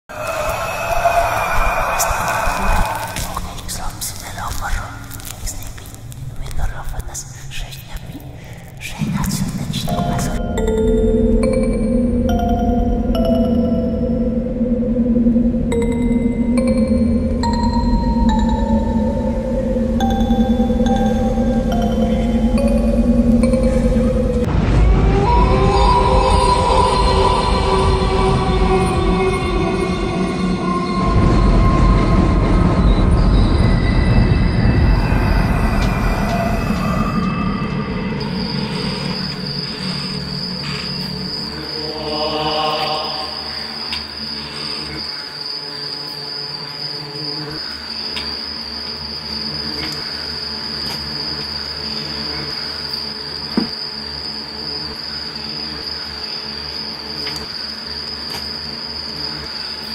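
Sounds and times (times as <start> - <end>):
low hum: 0.1 - 45.0
eerie held music tones: 0.1 - 59.9
high-pitched whine: 8.8 - 59.9.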